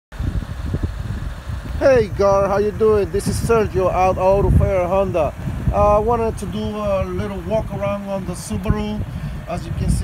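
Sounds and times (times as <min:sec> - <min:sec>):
wind buffeting microphone: 0:00.1 - 0:10.0
man saying hey: 0:01.8 - 0:03.0.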